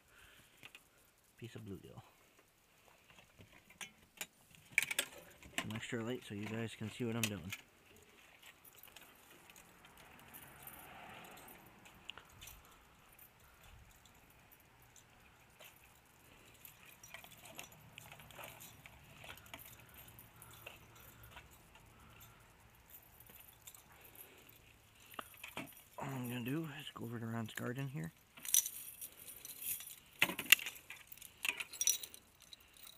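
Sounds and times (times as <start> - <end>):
faint clicks and rustles: 0.0 - 32.9
light metallic jingles: 0.0 - 32.9.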